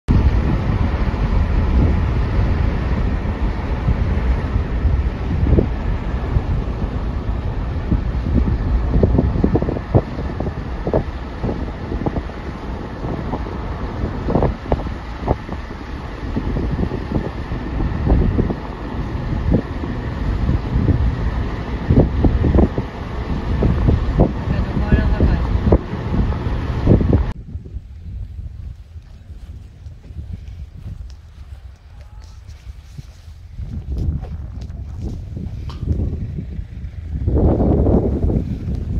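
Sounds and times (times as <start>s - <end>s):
wind buffeting microphone: 0.1s - 38.9s.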